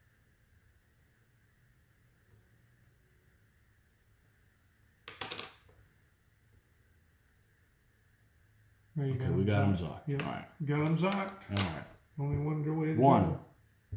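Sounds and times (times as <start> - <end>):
faint room noise: 0.0 - 13.9.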